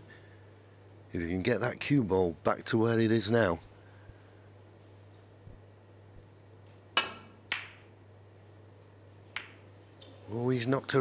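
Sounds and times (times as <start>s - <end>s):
snooker balls clicking: 6.7s - 7.9s, 8.8s - 10.2s
cue striking ball: 7.0s - 7.9s, 9.3s - 9.7s.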